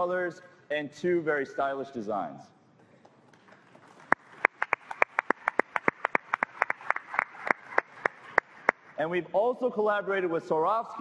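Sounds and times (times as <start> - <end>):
sparse audience applause: 3.6 - 8.9.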